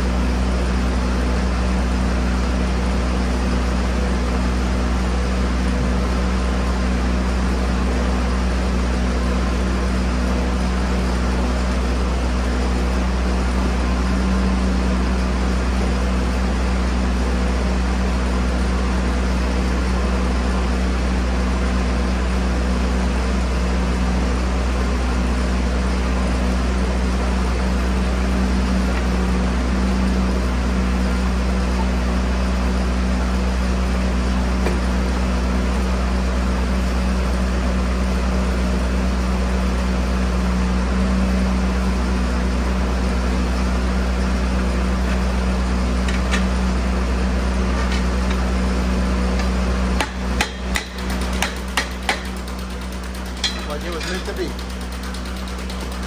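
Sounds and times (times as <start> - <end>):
low machine hum: 0.0 - 56.0.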